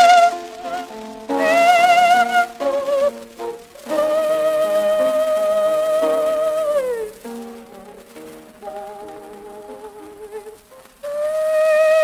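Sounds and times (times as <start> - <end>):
operatic soprano singing: 0.0 - 12.0
piano chords: 0.0 - 12.0
record surface hiss: 0.0 - 12.0.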